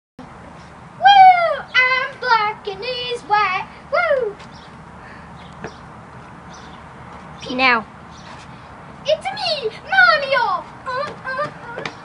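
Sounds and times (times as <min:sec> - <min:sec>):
high-pitched chipmunk voice singing: 0:09.1 - 0:12.0.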